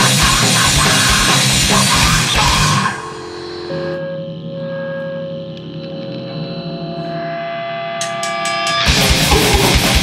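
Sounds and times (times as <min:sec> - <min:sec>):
fast heavy drums: 0:00.0 - 0:03.2, 0:08.8 - 0:10.0
distorted guitar chord ringing: 0:00.0 - 0:10.0.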